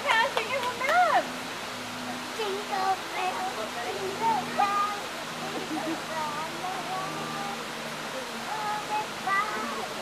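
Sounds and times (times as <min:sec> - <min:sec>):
water rushing: 0:00.0 - 0:10.0
child calling and crying: 0:08.7 - 0:10.0.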